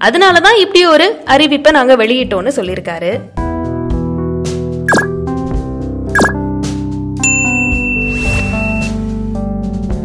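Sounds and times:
background music: 0:00.0 - 0:10.0
bright bell ding: 0:07.2 - 0:08.9.

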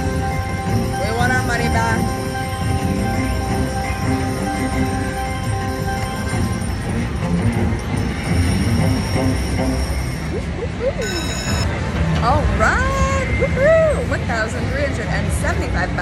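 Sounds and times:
slot machine chiming music: 0:00.0 - 0:11.9
brief ringing chime: 0:11.0 - 0:11.7.

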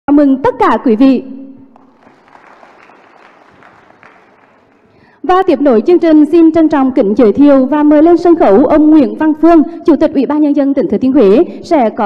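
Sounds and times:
audience applauding: 0:01.8 - 0:05.2.

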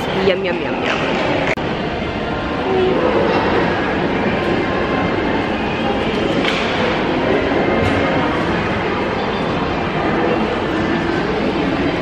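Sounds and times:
faint indistinct voices: 0:00.0 - 0:12.0
food court din: 0:00.0 - 0:12.0.

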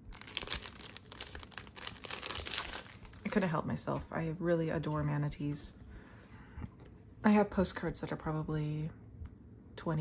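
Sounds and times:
plastic sleeve crinkling: 0:00.0 - 0:03.8.

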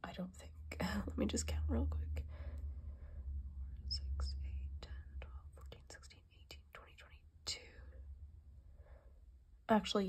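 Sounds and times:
woman whispering: 0:00.0 - 0:02.3, 0:03.6 - 0:08.0.

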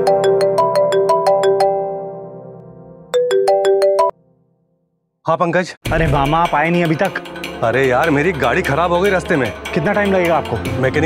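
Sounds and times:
phone ringtone: 0:00.0 - 0:02.2, 0:03.1 - 0:04.2.

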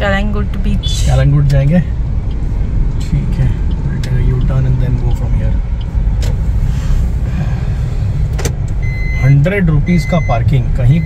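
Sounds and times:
car driving rumble inside cabin: 0:00.0 - 0:11.0.

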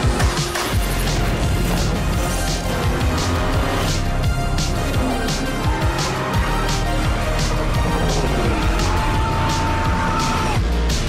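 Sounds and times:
pop song instrumental: 0:00.0 - 0:11.0.

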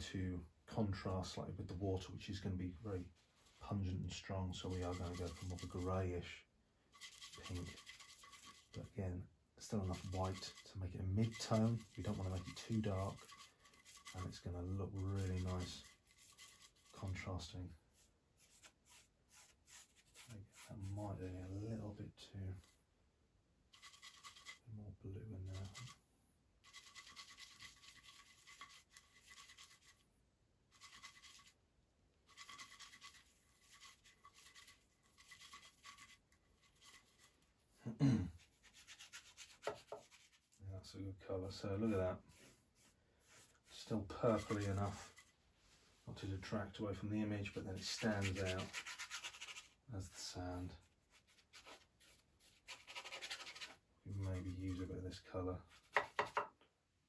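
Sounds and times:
paintbrush scrubbing on palette: 0:04.5 - 0:06.2, 0:06.9 - 0:08.9, 0:09.6 - 0:21.0, 0:23.7 - 0:24.6, 0:25.4 - 0:26.0, 0:26.6 - 0:30.1, 0:30.7 - 0:31.6, 0:32.2 - 0:37.7, 0:38.4 - 0:40.6, 0:41.4 - 0:46.0, 0:47.2 - 0:54.9, 0:55.6 - 0:56.4
throat clearing: 0:37.8 - 0:38.4.

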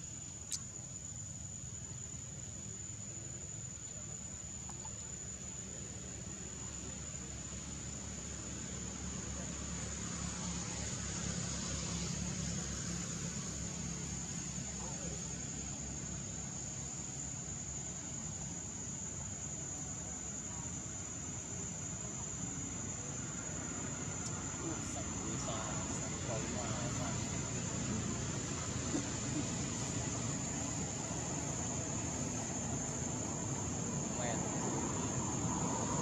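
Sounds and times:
high-pitched insect tone: 0:00.0 - 0:36.0
low engine-like rumble: 0:00.0 - 0:36.0.

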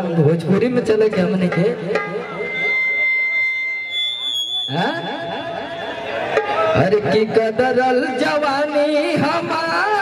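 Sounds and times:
man's amplified voice: 0:00.0 - 0:02.5, 0:04.7 - 0:05.8, 0:06.7 - 0:10.0
microphone feedback whistling: 0:02.0 - 0:06.9.

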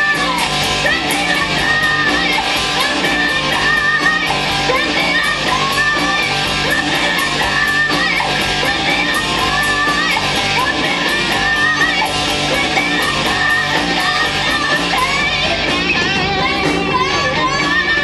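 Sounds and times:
distorted electric guitars: 0:00.0 - 0:18.0
drums with cymbals: 0:00.0 - 0:18.0
woman singing lead: 0:00.0 - 0:18.0.

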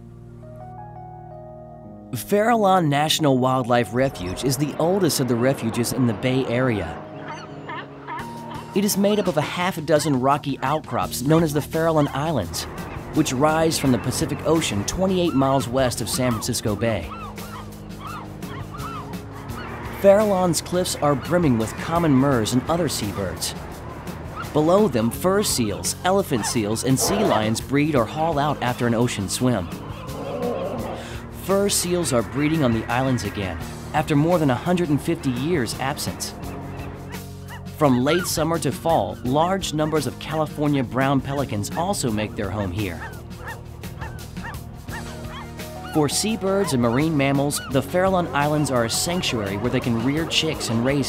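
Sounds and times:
background music steady notes: 0:00.0 - 0:51.0
seabirds calling: 0:02.6 - 0:51.0.

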